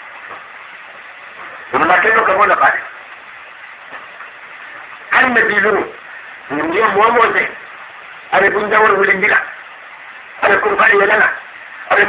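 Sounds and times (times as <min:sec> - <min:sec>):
recording noise hiss: 0:00.0 - 0:12.0.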